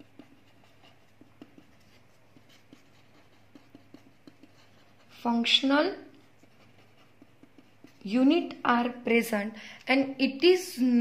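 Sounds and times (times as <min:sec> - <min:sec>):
marker pen writing on paper: 0:00.0 - 0:08.6.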